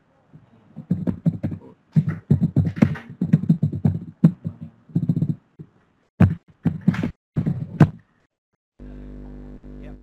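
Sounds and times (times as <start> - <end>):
choppy broken voice: 0.2 - 5.4.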